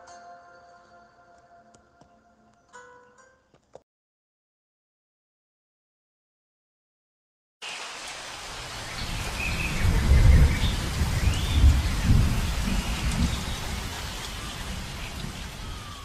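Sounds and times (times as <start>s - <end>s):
rain falling: 7.6s - 16.0s
thunder rolling: 9.0s - 16.0s.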